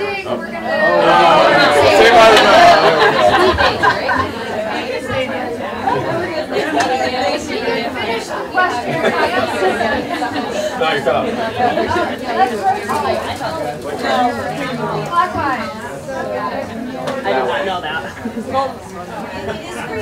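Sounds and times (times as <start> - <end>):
people talking at once: 0.0 - 20.0
people laughing: 0.7 - 13.0, 17.6 - 20.0.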